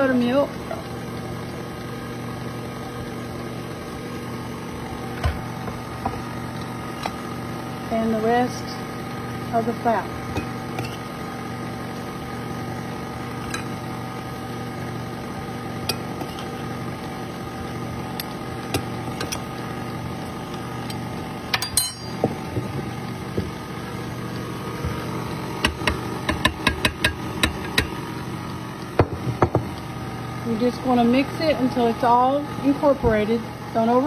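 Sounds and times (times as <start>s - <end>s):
stand mixer motor running: 0.0s - 21.5s, 22.1s - 34.0s.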